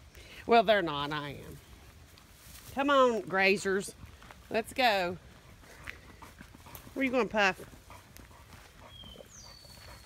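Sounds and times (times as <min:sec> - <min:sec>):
footsteps through tall grass: 0:01.0 - 0:10.0.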